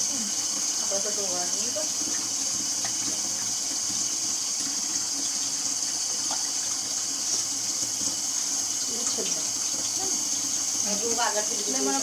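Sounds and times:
water running into a metal sink: 0.0s - 12.0s.

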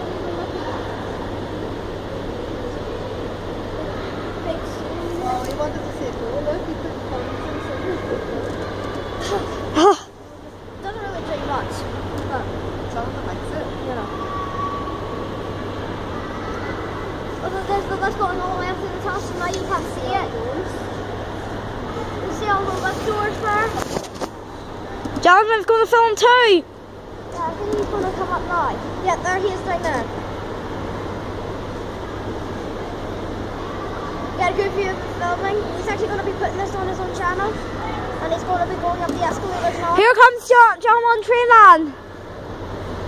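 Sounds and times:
faint voices: 0.0s - 30.3s.

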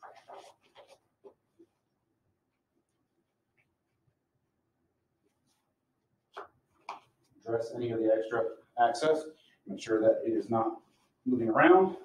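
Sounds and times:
cloth bandage rustling: 0.0s - 2.0s.

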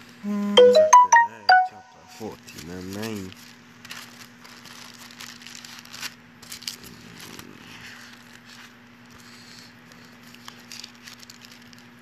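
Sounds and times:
low electrical hum: 0.0s - 12.0s
rustling and crackling: 2.6s - 12.0s.

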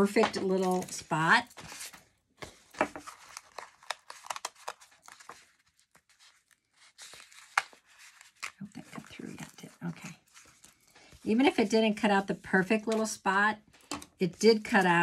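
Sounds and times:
cardstock crackling and rustling: 0.0s - 13.2s.

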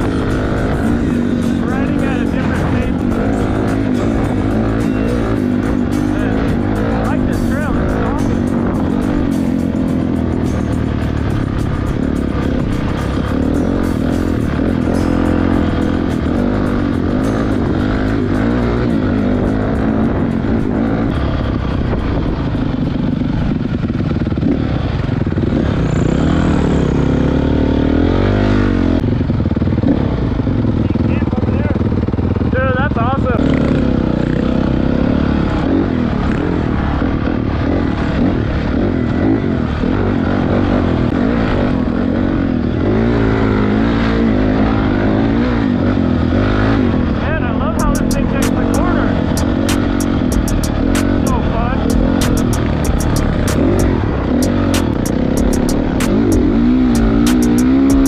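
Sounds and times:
sharp ticks: 0.0s - 24.6s, 47.7s - 58.0s
dirt bike engine revving: 0.0s - 58.0s
wind rushing over microphone: 19.8s - 25.9s.

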